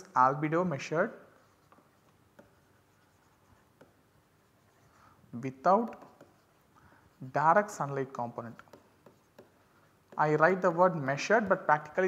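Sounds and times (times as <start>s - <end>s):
stylus tapping and scratching on tablet: 1.4s - 10.8s.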